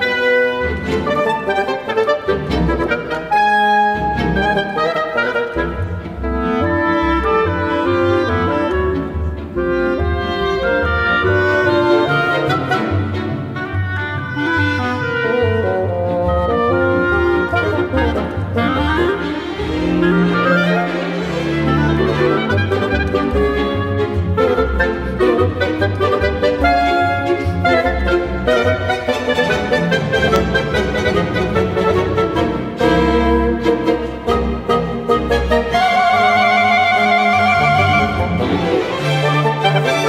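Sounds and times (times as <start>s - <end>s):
bassoon: 0.0s - 40.0s
clarinet: 0.0s - 40.0s
oboe: 0.0s - 40.0s
string orchestra: 0.0s - 40.0s.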